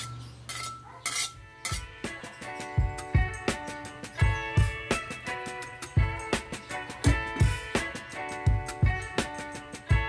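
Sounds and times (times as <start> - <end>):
metal spatula scraping a wok: 0.0 - 2.7.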